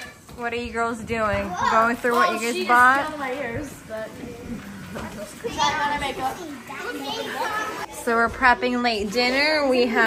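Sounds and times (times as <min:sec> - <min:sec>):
girls chattering: 0:01.2 - 0:10.0.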